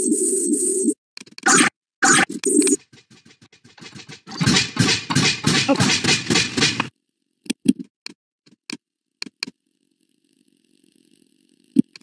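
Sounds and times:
noisy video game audio: 0:00.0 - 0:07.9.

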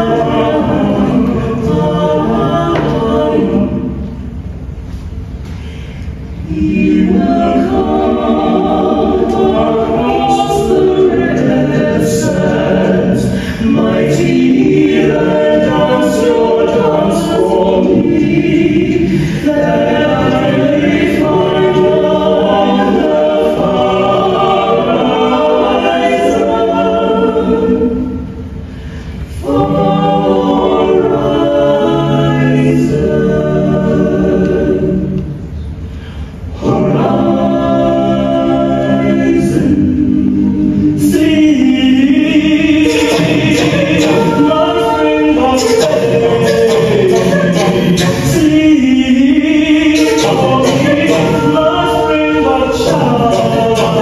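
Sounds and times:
mixed choir singing in harmony: 0:00.0 - 0:54.0.

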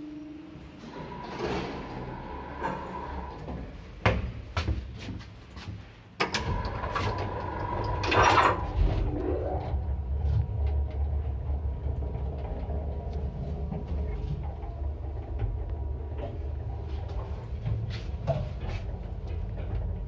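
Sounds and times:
lift travelling with low hum: 0:00.0 - 0:05.6, 0:06.3 - 0:20.0
sliding lift doors closing: 0:00.6 - 0:04.4, 0:06.2 - 0:20.0.

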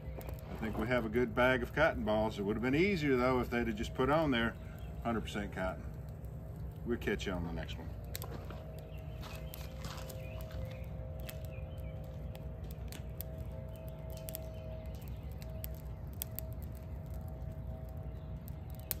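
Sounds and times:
steady low hum: 0:00.0 - 0:19.0
twigs crackling in a camp stove: 0:00.0 - 0:19.0.

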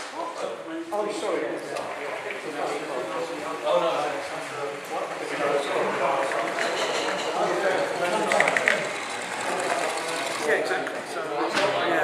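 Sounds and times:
hall chatter: 0:00.0 - 0:12.0
model locomotive running on track: 0:02.6 - 0:10.9.

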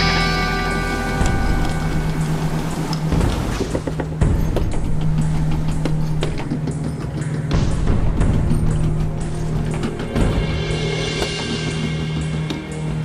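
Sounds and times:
musical chord ringing: 0:00.0 - 0:03.5
conveyor humming: 0:00.0 - 0:03.6.

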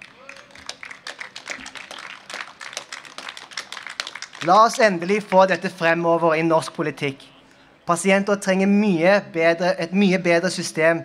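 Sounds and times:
crowd clapping: 0:00.0 - 0:05.8.

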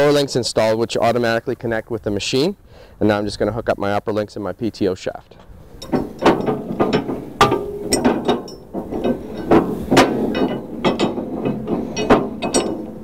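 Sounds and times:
metal clicks and clanks: 0:05.3 - 0:13.0.

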